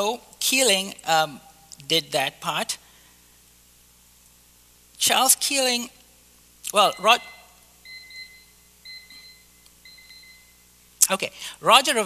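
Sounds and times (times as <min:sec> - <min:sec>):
electronic beeper short beeps: 0:06.8 - 0:10.6.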